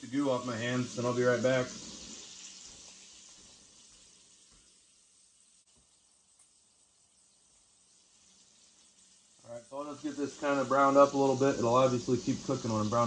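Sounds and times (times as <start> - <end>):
bacon sizzling in skillet: 0.0 - 13.0.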